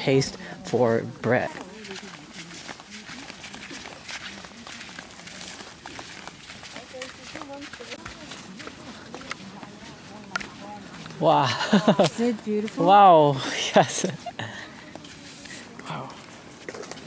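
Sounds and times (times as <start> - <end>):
faint chatter of people: 0.0 - 17.0
footsteps on dirt path: 0.0 - 17.0.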